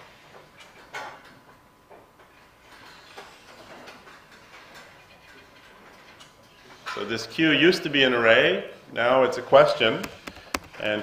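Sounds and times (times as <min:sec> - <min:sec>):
computer keyboard clicks: 0:10.0 - 0:10.8.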